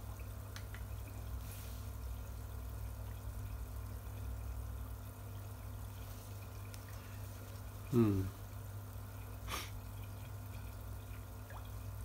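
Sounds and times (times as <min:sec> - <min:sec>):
steady low hum: 0:00.0 - 0:12.0
water trickling into a pond: 0:00.0 - 0:12.0.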